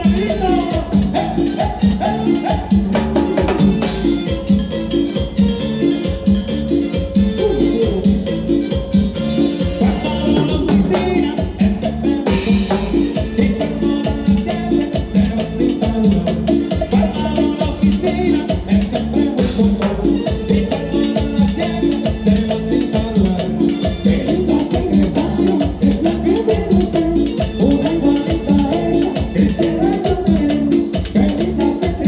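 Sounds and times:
salsa band playing: 0.0 - 32.0.

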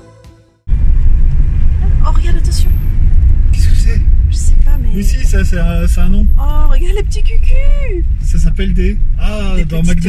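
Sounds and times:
car interior low rumble: 0.7 - 10.0.

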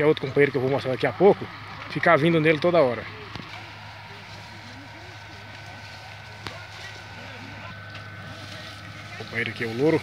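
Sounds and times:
distant voices talking: 0.0 - 10.0
steady low hum: 0.0 - 10.0.

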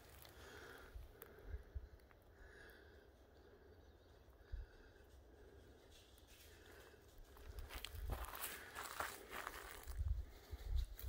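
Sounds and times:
footsteps crunching through dry leaves: 6.1 - 11.0.

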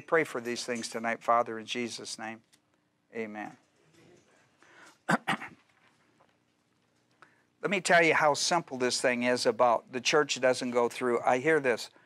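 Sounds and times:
faint steady hum: 0.0 - 12.0
man clearing his throat: 5.1 - 5.6.

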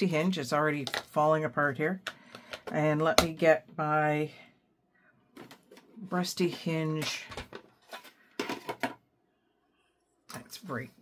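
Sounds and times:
craft supplies clattering: 5.4 - 9.0.

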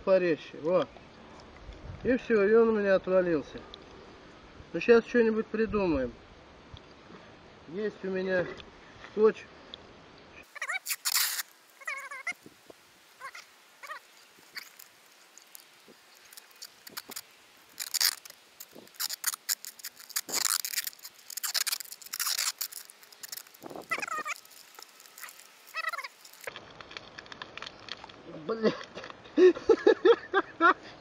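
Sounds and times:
squeaky tape peels: 10.4 - 28.2
duct tape pulled off roll: 10.5 - 28.2.

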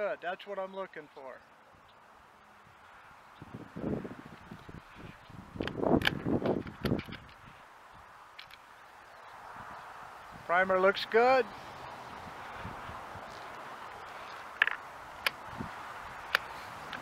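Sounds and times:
metallic clacks of rifle bolt: 5.6 - 7.4
rifle bolt clicks: 5.6 - 7.4.

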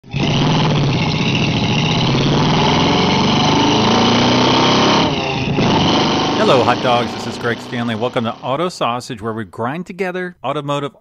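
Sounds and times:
vehicle engine revving: 0.0 - 8.7.

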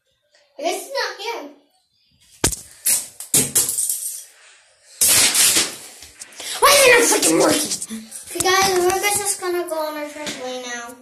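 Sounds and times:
rubbing on microphone: 6.1 - 9.5.

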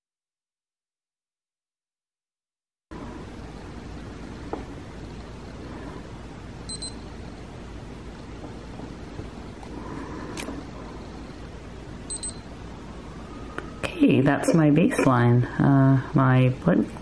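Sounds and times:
short high-pitched electronic beeps: 6.7 - 7.0, 12.1 - 12.4.

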